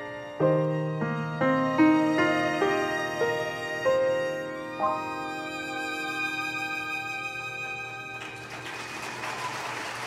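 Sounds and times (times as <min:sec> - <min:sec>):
audience applause: 0:08.1 - 0:10.0.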